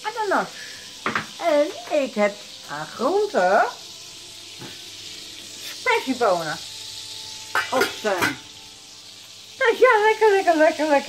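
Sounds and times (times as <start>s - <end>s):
hot fat sizzling in pan: 0.0s - 11.0s.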